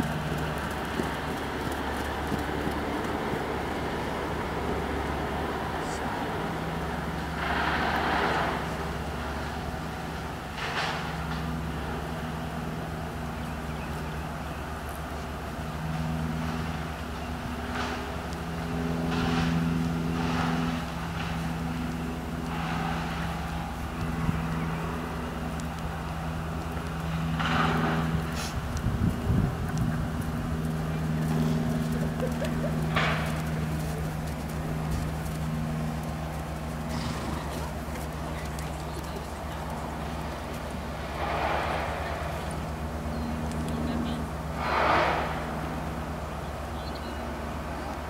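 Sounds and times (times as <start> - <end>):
engine hum: 0.0 - 48.0
low rumble: 18.6 - 46.3.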